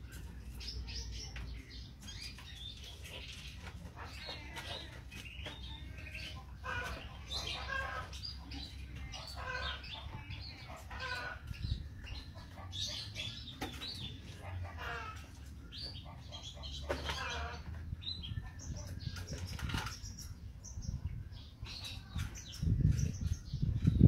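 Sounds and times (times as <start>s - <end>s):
birds chirping and calling: 0.0s - 24.0s.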